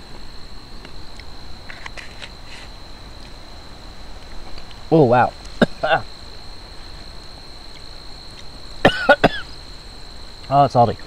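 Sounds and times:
man coughing: 0:05.6 - 0:06.1, 0:08.8 - 0:09.5.

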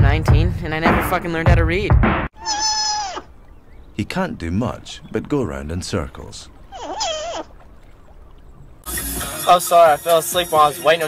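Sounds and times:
sea otter squeal: 0:02.4 - 0:03.8, 0:06.6 - 0:07.7.

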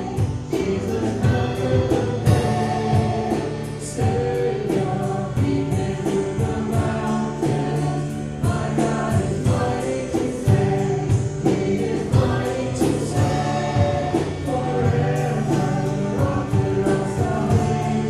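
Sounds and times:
congregation singing worship song: 0:00.0 - 0:18.0
instrumental backing with beat: 0:00.0 - 0:18.0.

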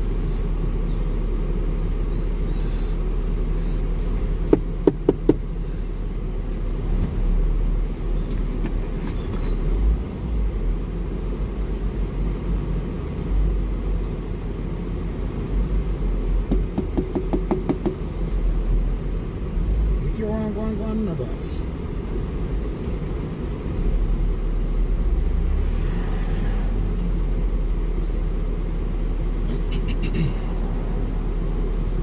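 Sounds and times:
engine and tyres rumbling: 0:00.0 - 0:32.0.

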